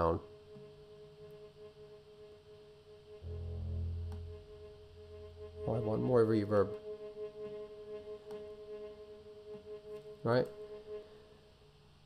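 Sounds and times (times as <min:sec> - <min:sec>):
viola drone with reverb: 0:03.2 - 0:09.2.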